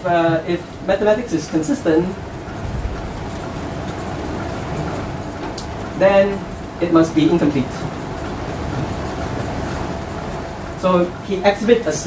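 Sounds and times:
air conditioning hiss and hum: 0:00.0 - 0:12.0.

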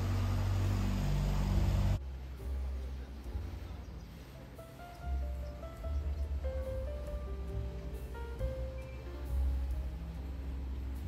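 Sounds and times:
motorboat engine droning: 0:00.0 - 0:11.0.

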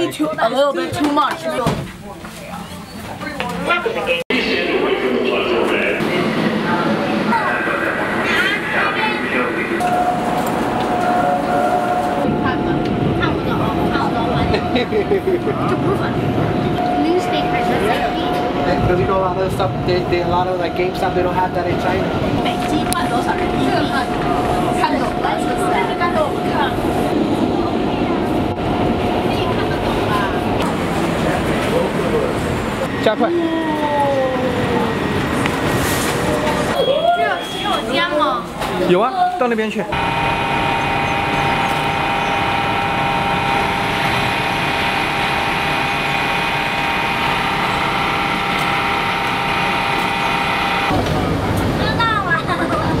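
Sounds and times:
subway train rumble: 0:00.0 - 0:53.0
children's voices: 0:03.2 - 0:09.9, 0:10.8 - 0:14.8, 0:15.5 - 0:18.6, 0:22.4 - 0:30.6, 0:51.7 - 0:53.0
high train whine: 0:03.7 - 0:39.3, 0:39.9 - 0:53.0
bus engine running: 0:06.0 - 0:33.0, 0:40.0 - 0:53.0
wheelchair lift motor whine: 0:40.0 - 0:51.0.

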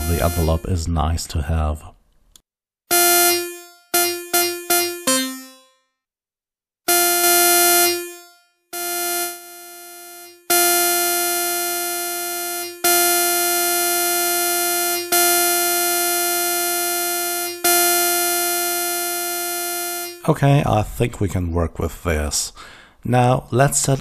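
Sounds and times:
synthesizer metallic guitar-like notes: 0:00.0 - 0:00.7, 0:02.9 - 0:05.7.

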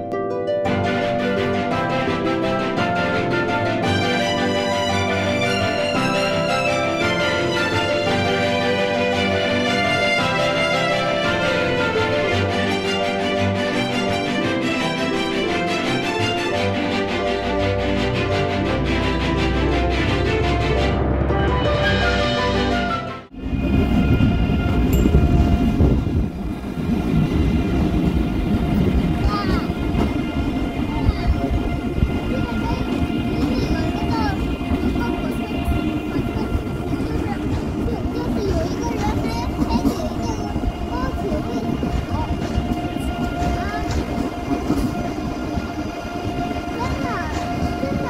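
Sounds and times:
train wheels rumbling: 0:00.8 - 0:48.0
indistinct voices: 0:27.6 - 0:48.0.

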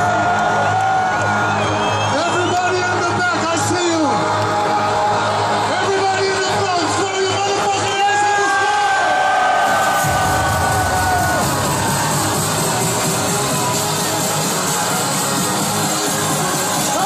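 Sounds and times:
crowd cheering: 0:00.0 - 0:17.0
electronic dance music: 0:00.0 - 0:17.0
deep bass: 0:09.7 - 0:17.0.

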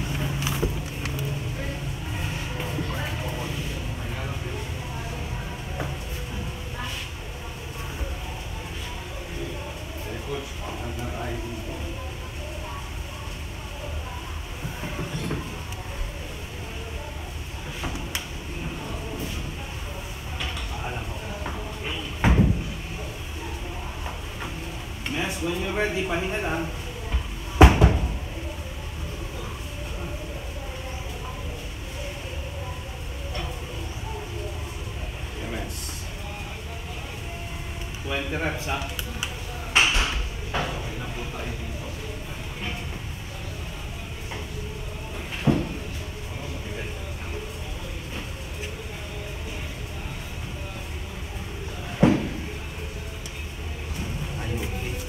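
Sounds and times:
faint voices: 0:00.0 - 0:55.0.

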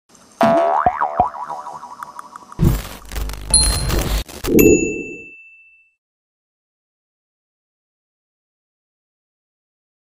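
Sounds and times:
cartoon boing: 0:00.4 - 0:02.2.

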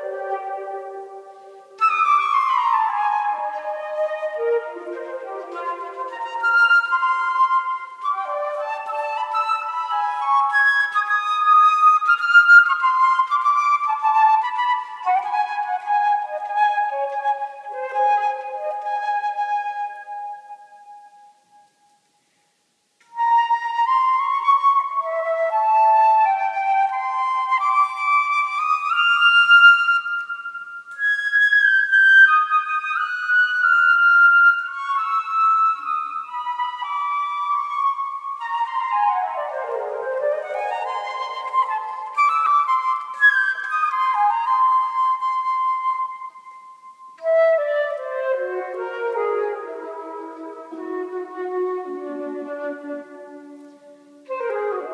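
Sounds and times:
solo flute with echo: 0:00.0 - 0:54.9.

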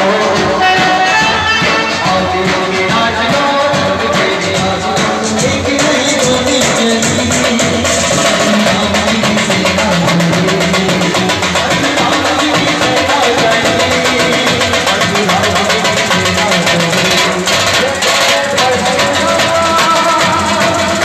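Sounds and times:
crowd voices: 0:00.0 - 0:21.0
large drum beating: 0:00.0 - 0:21.0
procession band music: 0:00.0 - 0:21.0.

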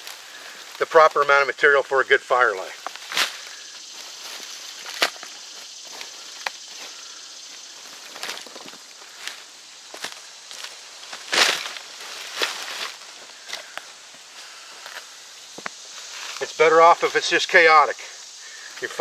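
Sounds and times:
footsteps on dry leaves: 0:02.5 - 0:17.2
sticks dropped onto a pile: 0:04.8 - 0:05.4, 0:11.2 - 0:13.8.

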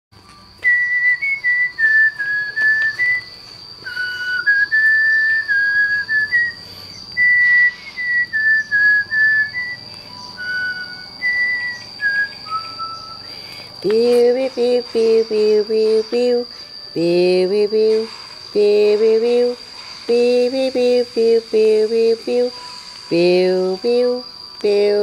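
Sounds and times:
person whistling a tune: 0:00.2 - 0:24.7.

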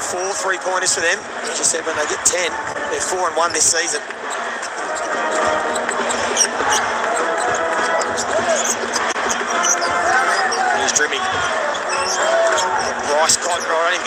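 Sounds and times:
crowd voices in arena: 0:00.0 - 0:14.0.

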